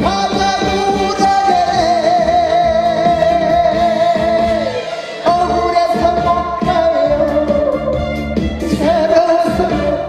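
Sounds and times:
instrumental accompaniment with beat: 0.0 - 10.0
man singing into a microphone: 0.0 - 10.0.

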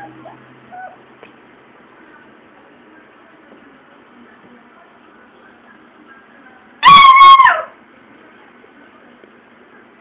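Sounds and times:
dog giving high-pitched cry: 0.0 - 1.0, 6.8 - 7.8.

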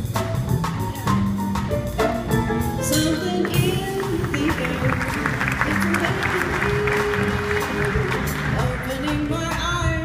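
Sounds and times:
jazz trio playing: 0.0 - 10.0
woman singing: 2.9 - 10.0.

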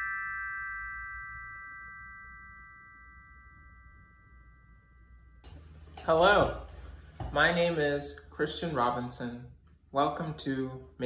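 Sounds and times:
metal chime bars ringing: 0.0 - 5.2.

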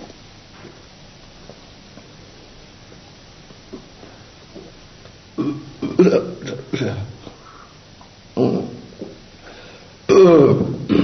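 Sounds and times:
boy making throaty vocal sounds: 8.4 - 8.9, 10.1 - 11.0.

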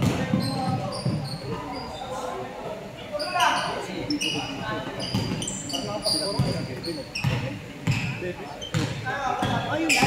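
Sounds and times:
sneaker squeaks: 0.0 - 2.2, 3.1 - 10.0
players' voices: 0.0 - 10.0
basketball bouncing on hardwood floor: 8.7 - 9.6.

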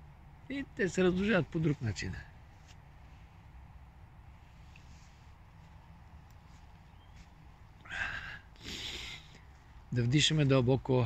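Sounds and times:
man breathing deeply: 7.7 - 9.8.

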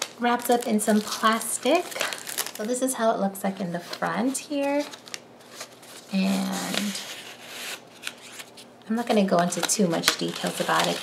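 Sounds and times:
paper rustling: 0.0 - 2.8, 3.6 - 11.0.

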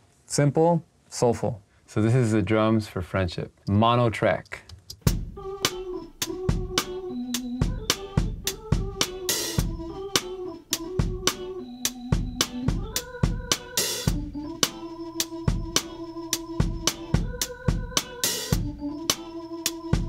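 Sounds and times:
kick and snare drum beat: 5.0 - 7.0, 7.6 - 11.5, 12.1 - 14.8, 15.5 - 15.9, 16.6 - 18.8.

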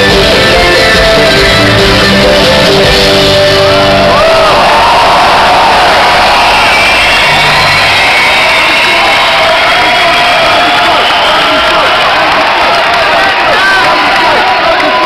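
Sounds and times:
bass guitar low notes: 0.0 - 5.0
crowd cheering and shouting: 0.0 - 15.0.

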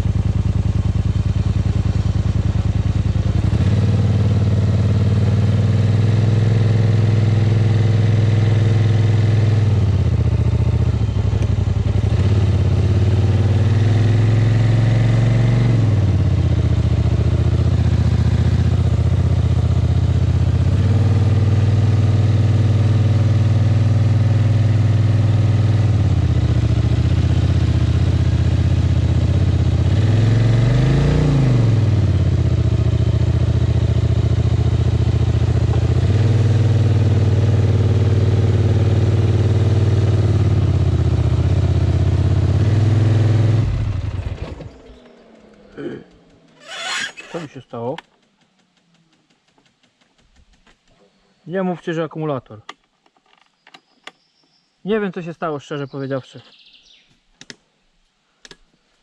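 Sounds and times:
quad bike engine revving: 0.0 - 48.1.

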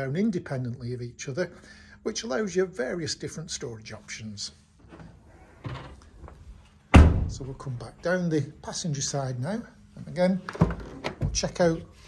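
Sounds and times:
car tailgate slamming shut: 6.9 - 7.4.

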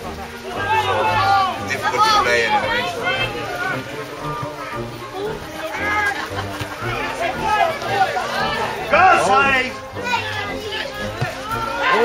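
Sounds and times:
people shouting: 0.0 - 12.0.

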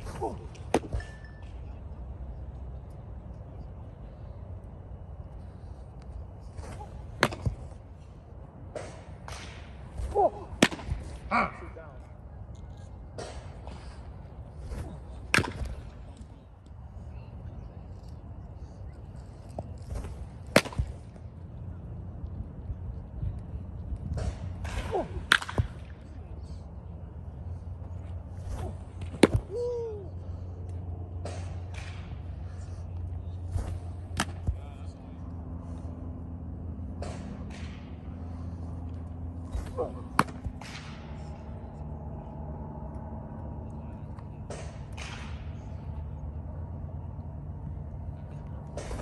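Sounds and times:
baseball impact cracks: 0.0 - 1.1, 6.5 - 8.0, 8.6 - 11.8, 13.1 - 16.7, 19.4 - 21.2, 23.8 - 26.1, 27.9 - 34.6, 36.7 - 42.0, 44.1 - 46.0, 48.6 - 49.0
open-air background noise: 0.0 - 49.0
steady low hum: 0.0 - 49.0
bat sharp crack: 6.6 - 7.8, 8.7 - 11.7, 14.7 - 15.8, 19.9 - 21.0, 24.2 - 25.9, 28.4 - 30.1, 39.4 - 41.6, 44.5 - 45.6.

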